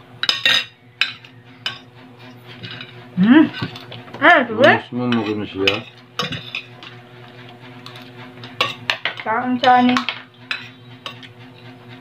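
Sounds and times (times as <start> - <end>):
utensils clinking against plate: 0.2 - 11.8.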